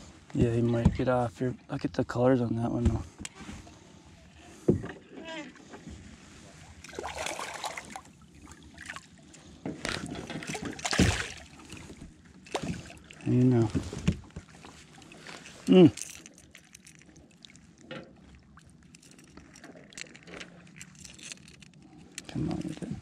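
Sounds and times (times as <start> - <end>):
fish splashing at water surface: 6.8 - 9.2, 10.3 - 13.2.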